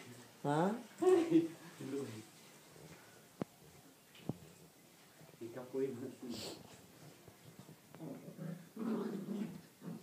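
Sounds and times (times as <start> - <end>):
dog growling: 8.0 - 10.0.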